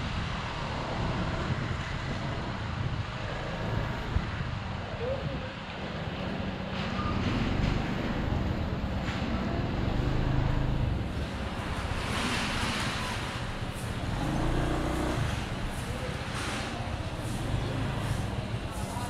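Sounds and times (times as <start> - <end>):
road traffic: 0.0 - 19.0.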